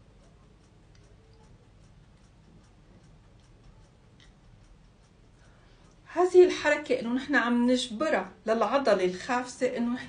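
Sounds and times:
light ticks: 0:00.0 - 0:07.1.

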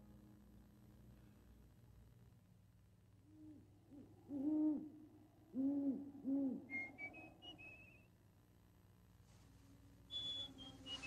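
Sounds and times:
owl hooting: 0:03.3 - 0:08.1.

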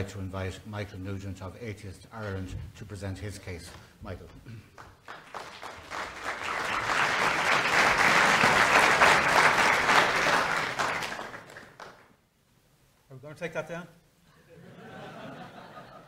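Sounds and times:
audience applause: 0:04.8 - 0:12.1.

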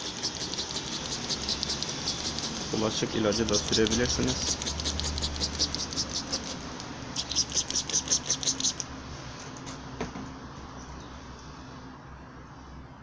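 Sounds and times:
sprayer click: 0:00.0 - 0:06.9
trigger sprayer hissing spurts: 0:00.0 - 0:09.7.

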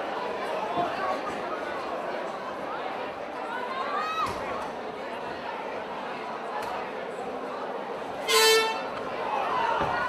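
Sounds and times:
crowd murmuring: 0:00.0 - 0:10.0
loud horn blast: 0:08.2 - 0:09.0.

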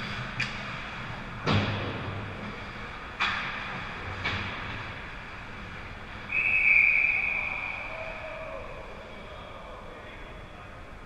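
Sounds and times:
referee's whistle long blast: 0:06.3 - 0:08.4.

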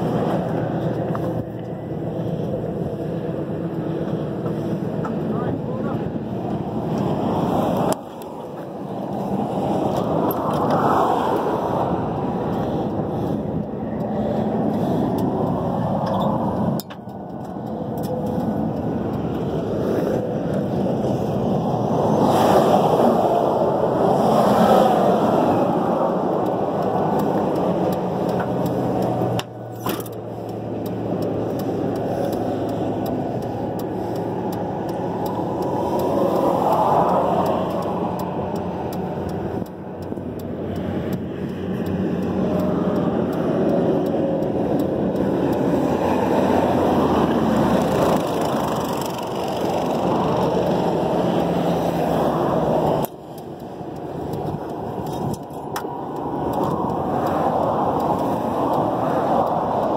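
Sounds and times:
motor vehicle noise: 0:00.0 - 0:59.9.

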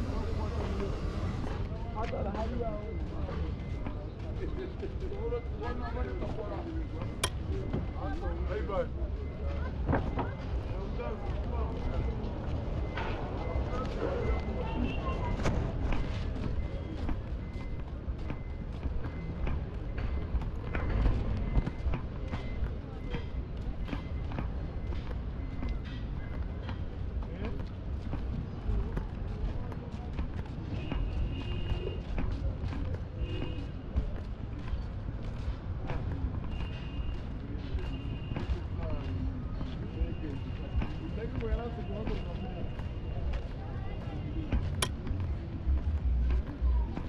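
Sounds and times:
people's voices: 0:00.0 - 0:47.0
traffic rumble: 0:00.0 - 0:47.0.

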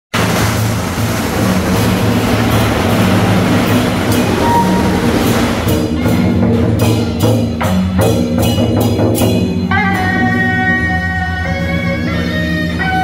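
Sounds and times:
loud continuous clashing: 0:00.1 - 0:10.4
percussion strikes: 0:00.2 - 0:13.0.

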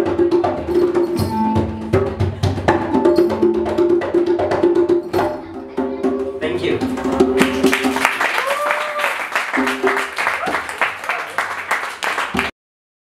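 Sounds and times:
quick dense percussion: 0:00.0 - 0:11.1, 0:12.1 - 0:12.5.

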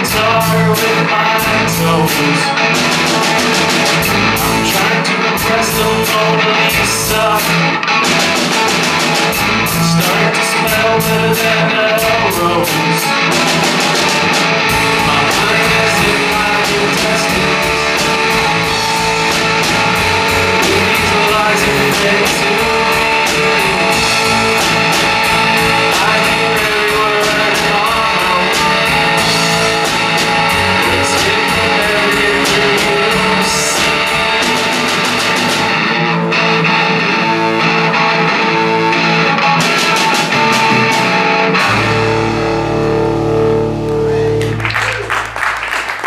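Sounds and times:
male lead vocal: 0:00.0 - 0:35.3
bass guitar: 0:00.0 - 0:46.0
drum kit beat: 0:00.0 - 0:46.0
guitar: 0:00.0 - 0:46.0.

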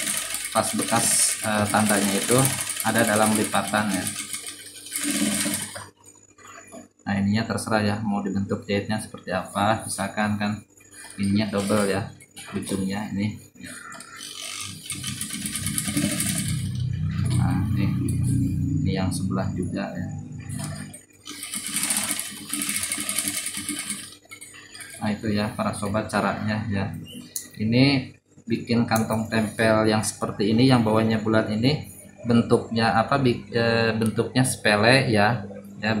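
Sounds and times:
sewing machine stitching: 0:00.0 - 0:06.0, 0:11.0 - 0:12.0, 0:14.0 - 0:17.6, 0:20.5 - 0:25.2.

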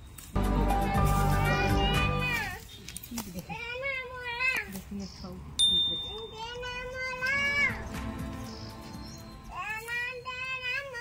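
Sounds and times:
background music: 0:00.4 - 0:02.6, 0:07.2 - 0:09.6.

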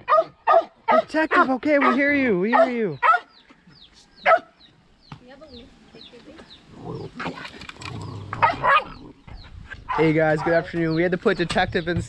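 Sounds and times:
dog barking: 0:00.0 - 0:03.3, 0:04.2 - 0:04.6, 0:08.4 - 0:09.0, 0:09.9 - 0:10.7.

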